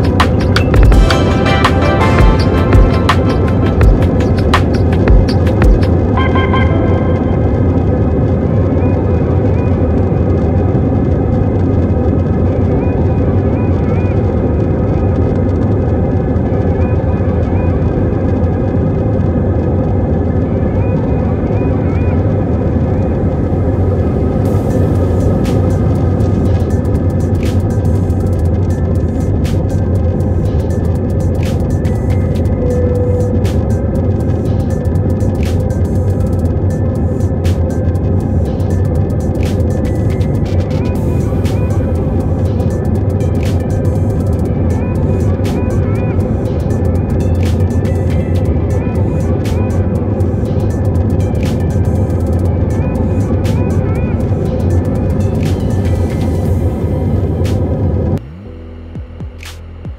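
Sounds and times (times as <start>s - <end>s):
music playing: 0.0s - 8.5s, 20.7s - 59.9s
jet engines from inside cabin: 0.0s - 58.2s.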